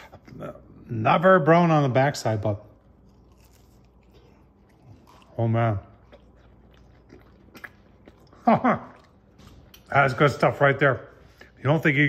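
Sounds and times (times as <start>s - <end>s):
biting and chewing pizza crust: 2.2s - 10.2s.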